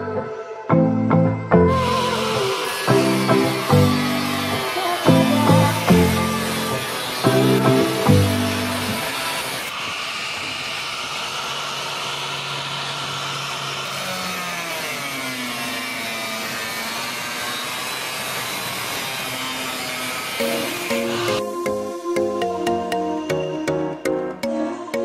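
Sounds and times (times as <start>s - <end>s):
angle grinder cutting metal: 1.7s - 23.1s.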